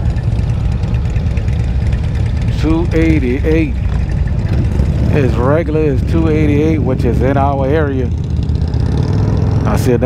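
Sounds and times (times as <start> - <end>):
motorcycles idling: 0.0 - 10.0.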